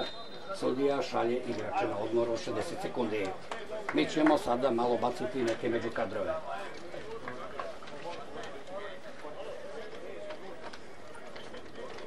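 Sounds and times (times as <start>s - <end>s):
faint overlapping voices: 0.0s - 12.0s.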